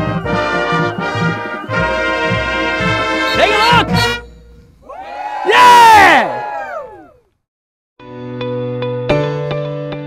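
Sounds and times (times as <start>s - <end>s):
brass band playing held chords: 0.0s - 4.8s.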